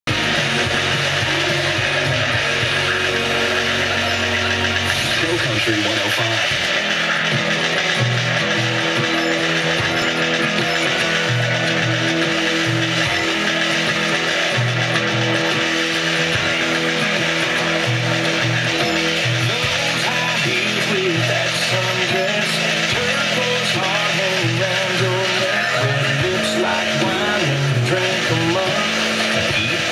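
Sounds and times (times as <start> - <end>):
country music on radio: 0.0 - 29.9.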